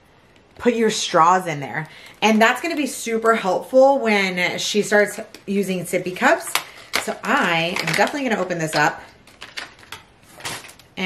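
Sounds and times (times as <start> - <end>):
plastic basket clicks and rattles: 6.5 - 10.9.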